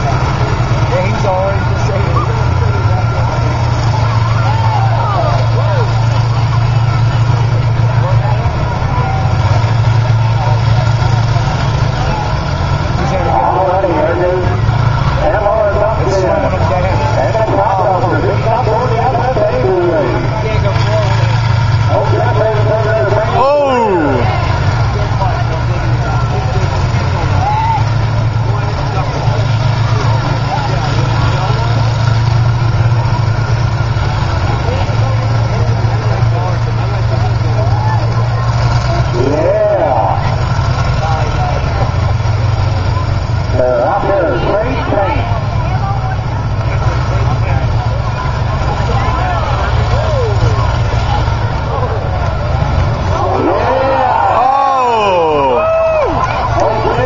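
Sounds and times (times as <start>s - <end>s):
combine harvester engines running: 0.0s - 57.0s
voices and shouts: 0.0s - 57.0s.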